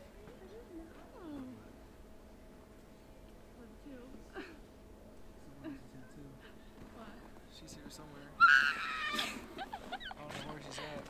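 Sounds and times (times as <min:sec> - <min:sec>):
high-pitched squeals and whoops: 0:08.4 - 0:09.3
woman laughing excitedly: 0:08.9 - 0:10.2.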